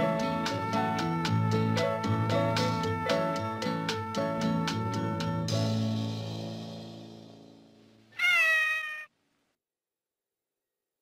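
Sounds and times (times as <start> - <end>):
kitten meowing: 8.2 - 9.1.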